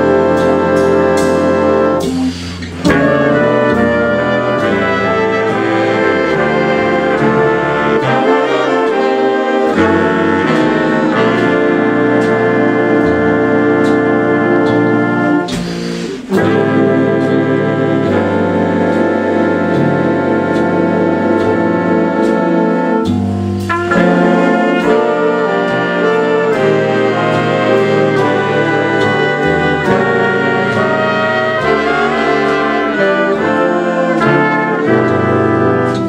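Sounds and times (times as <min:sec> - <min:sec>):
jazz big band playing: 0:00.0 - 0:36.0.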